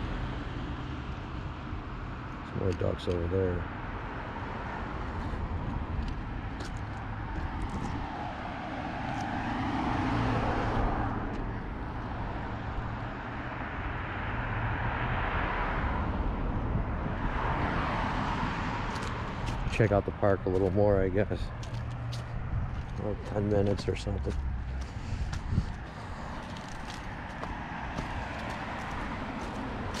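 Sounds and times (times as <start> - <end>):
cars passing with tyre noise: 0.0 - 30.0.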